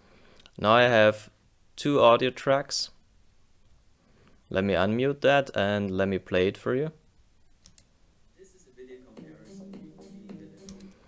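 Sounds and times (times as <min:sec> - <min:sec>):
computer clicks: 0:07.6 - 0:07.9, 0:10.6 - 0:11.0
faint music: 0:08.3 - 0:11.0.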